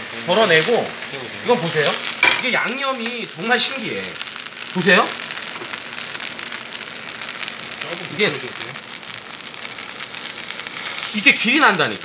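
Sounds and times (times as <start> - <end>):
sauce sizzling in frying pan: 0.0 - 12.0.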